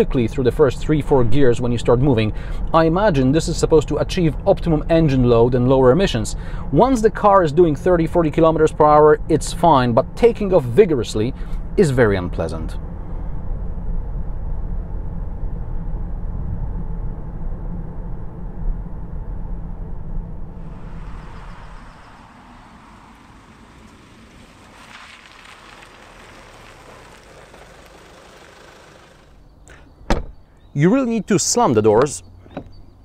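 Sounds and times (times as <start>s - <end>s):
car moving slowly: 0.0s - 33.0s
engine and tyre rumble: 0.0s - 33.0s.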